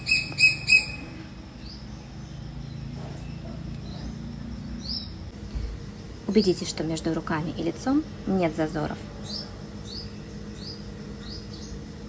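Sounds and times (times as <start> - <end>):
bird chirping: 0.0 - 5.3, 9.2 - 11.9
low steady hum: 0.0 - 12.0.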